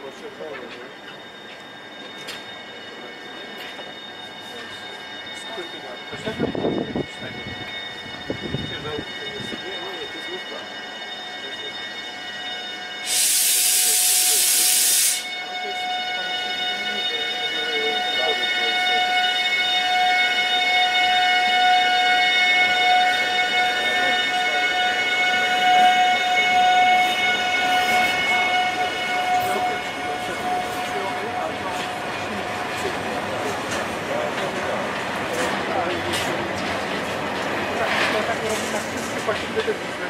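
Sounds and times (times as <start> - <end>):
high whine of passing train: 0.0 - 40.0
loud hiss: 13.0 - 15.3.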